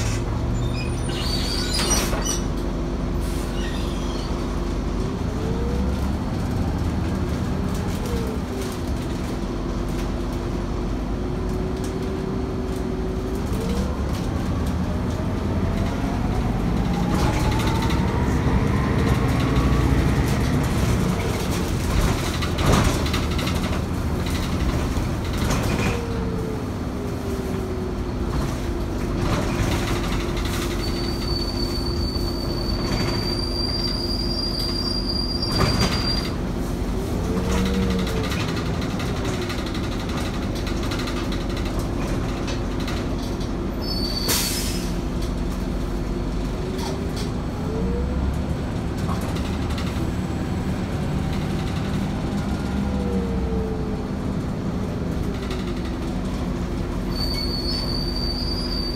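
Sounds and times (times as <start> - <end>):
bus engine drone: 0.0 - 58.9.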